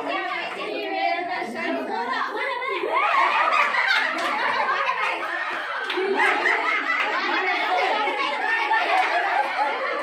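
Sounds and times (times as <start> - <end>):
women laughing: 2.9 - 10.0
women chattering: 4.4 - 10.0.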